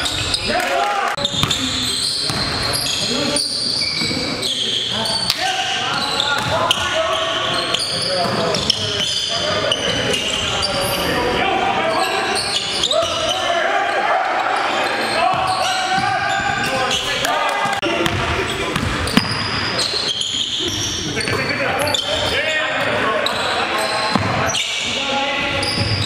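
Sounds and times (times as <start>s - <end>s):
players' voices and calls: 0.0s - 26.0s.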